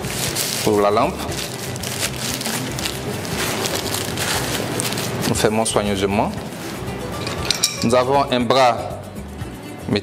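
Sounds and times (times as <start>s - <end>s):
tissue paper crinkling: 0.0s - 5.7s.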